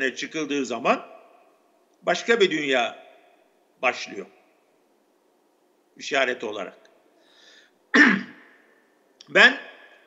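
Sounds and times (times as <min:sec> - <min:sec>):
man clearing his throat: 0:07.9 - 0:08.6.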